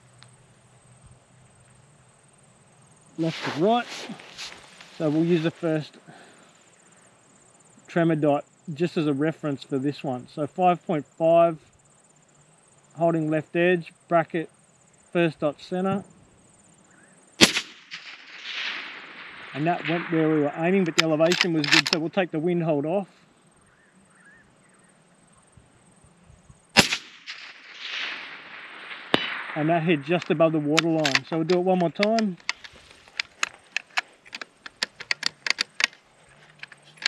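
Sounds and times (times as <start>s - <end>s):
small sharp clicks: 0.2s - 0.4s, 20.8s - 22.1s, 29.0s - 37.0s
rifle shot: 17.4s - 22.0s, 26.7s - 33.4s.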